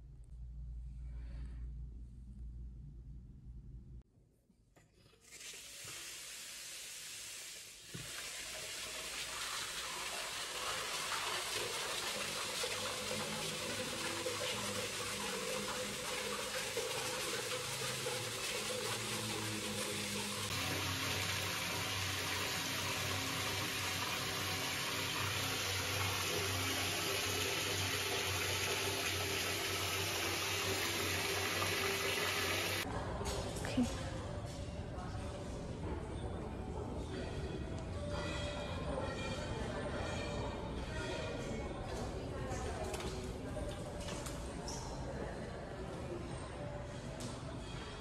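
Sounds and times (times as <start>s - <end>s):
tap water running into bathtub: 5.1s - 32.8s.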